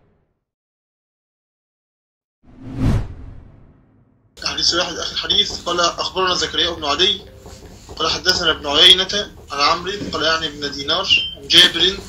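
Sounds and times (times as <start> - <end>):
whoosh: 2.5 - 4.3
deep low boom: 2.9 - 4.3.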